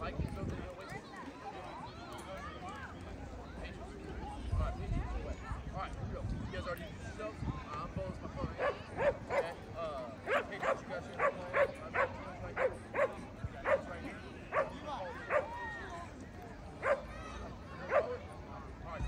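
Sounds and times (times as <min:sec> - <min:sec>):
people's voices: 0:00.0 - 0:19.0.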